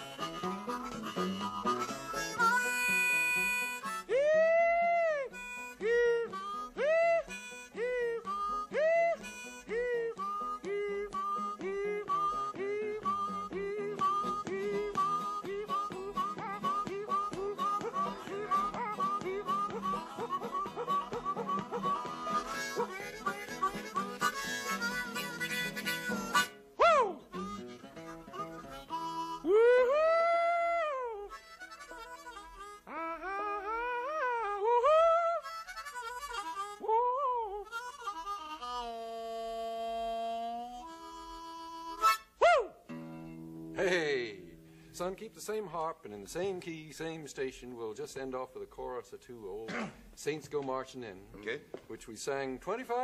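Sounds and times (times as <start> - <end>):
blues harmonica: 0.0 - 45.9
acoustic guitar: 0.0 - 50.7.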